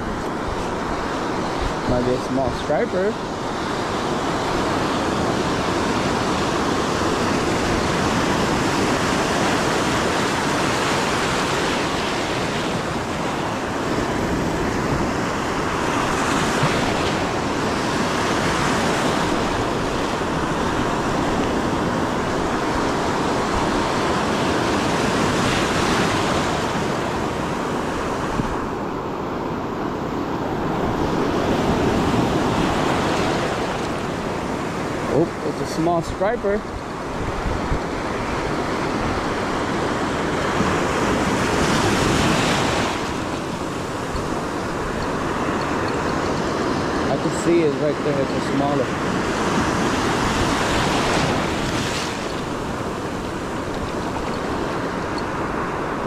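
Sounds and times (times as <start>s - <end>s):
ocean surf breaking: 0.0s - 56.0s.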